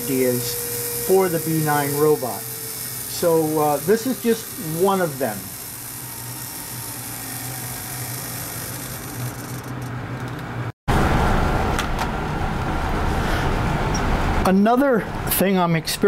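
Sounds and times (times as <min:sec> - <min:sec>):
servo motor whirring: 0:00.0 - 0:10.4.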